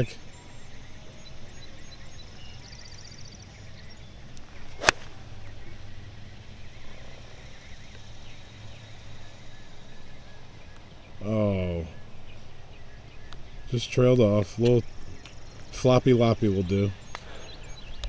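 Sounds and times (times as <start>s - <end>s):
golf ball impact crack: 4.3s - 5.8s
golf club swish: 4.4s - 5.6s.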